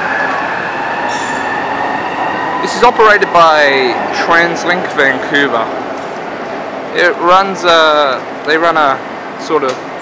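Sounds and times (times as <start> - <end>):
train pulling away: 0.0 - 9.4.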